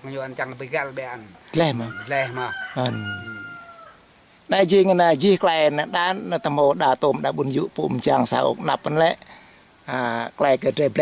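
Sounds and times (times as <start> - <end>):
rooster crowing: 1.7 - 4.0.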